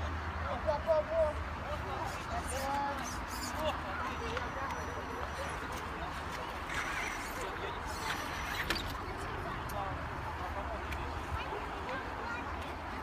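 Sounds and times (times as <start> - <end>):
outdoor noise: 0.0 - 13.0
people's voices: 0.0 - 13.0.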